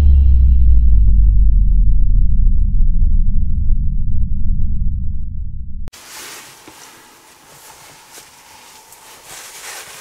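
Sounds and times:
deep rumble: 0:00.0 - 0:05.9
light crackles: 0:06.0 - 0:10.0.

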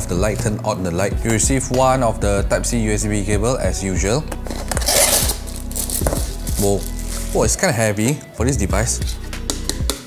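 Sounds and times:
background music: 0:00.0 - 0:10.0
packaging rustling: 0:04.5 - 0:07.4.

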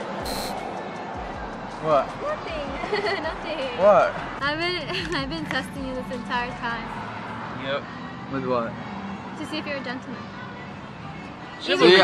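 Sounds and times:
background music: 0:00.0 - 0:12.0
busy background noise: 0:00.0 - 0:12.0.

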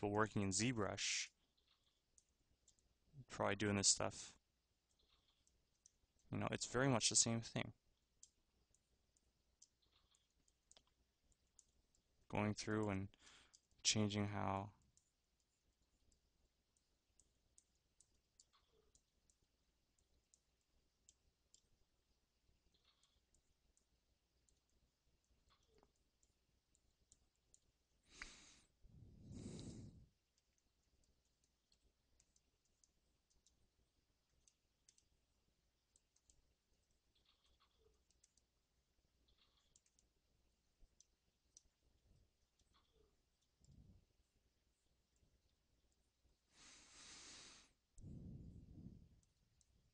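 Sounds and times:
light irregular clicks: 0:01.4 - 0:03.0, 0:03.7 - 0:21.9, 0:29.4 - 0:38.6, 0:39.2 - 0:40.2, 0:40.8 - 0:43.8.

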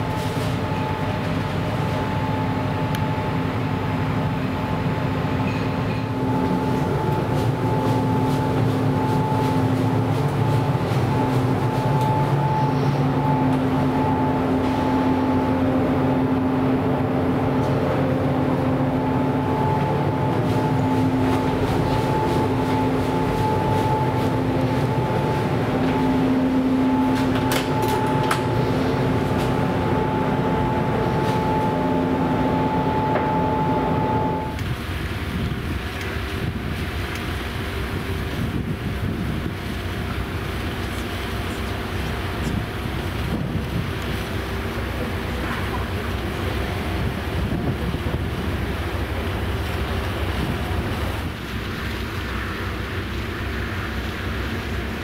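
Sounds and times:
low rumble of ship: 0:00.0 - 0:55.0
ship machinery hum: 0:00.0 - 0:55.0
wind buffeting microphone: 0:38.2 - 0:39.8, 0:42.4 - 0:44.1, 0:46.9 - 0:48.8.

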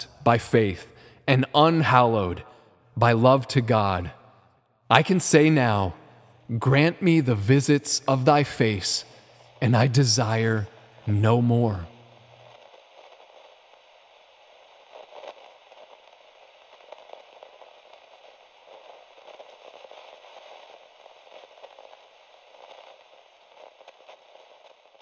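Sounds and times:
crackling hiss with small pops: 0:00.0 - 0:25.0.

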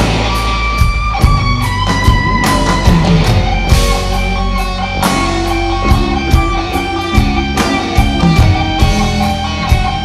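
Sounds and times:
bass guitar: 0:00.0 - 0:10.0
drum kit steady beat: 0:00.0 - 0:10.0
electric guitar: 0:00.0 - 0:10.0.

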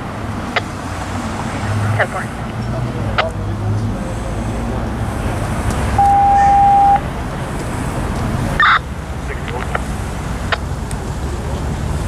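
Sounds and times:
street traffic hum: 0:00.0 - 0:12.0
radio alert beep: 0:06.0 - 0:07.0, 0:08.6 - 0:08.8.

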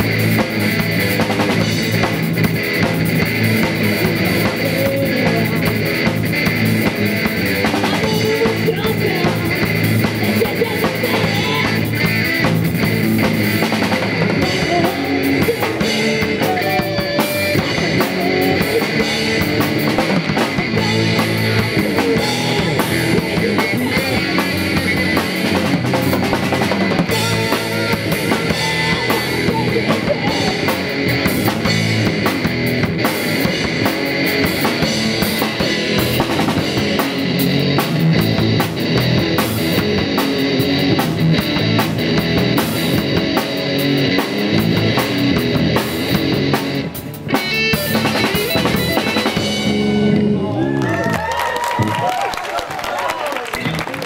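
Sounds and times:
drum kit beat: 0:00.0 - 0:50.3
live rock band playing: 0:00.0 - 0:52.2.

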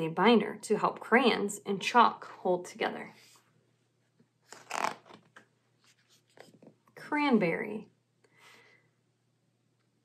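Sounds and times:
page turning swish: 0:04.4 - 0:06.7.

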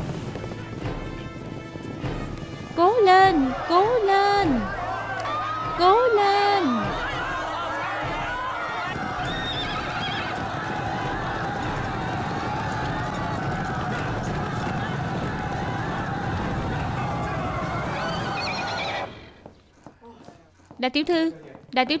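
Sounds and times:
horses galloping on turf: 0:00.0 - 0:06.2, 0:06.8 - 0:20.8
crowd shouting and cheering: 0:02.8 - 0:19.6.

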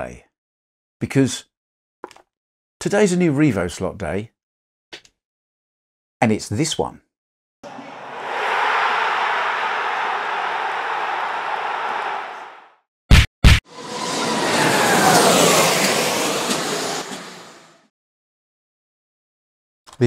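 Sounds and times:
crowd cheering: 0:07.6 - 0:12.8, 0:13.7 - 0:17.7
whoosh with falling pitch sweeps: 0:13.7 - 0:17.8.

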